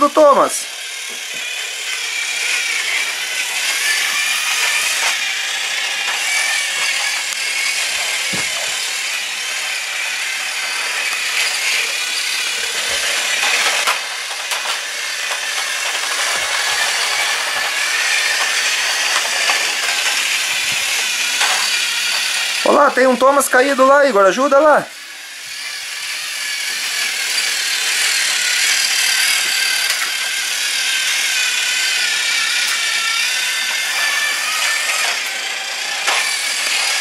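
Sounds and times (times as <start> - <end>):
toy train motor whirring: 0.0 - 37.0.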